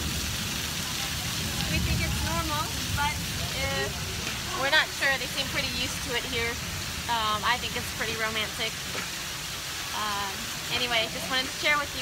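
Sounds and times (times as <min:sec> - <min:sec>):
heavy rain drumming on pavement: 0:00.0 - 0:12.0
people talking: 0:00.8 - 0:08.9, 0:09.9 - 0:12.0.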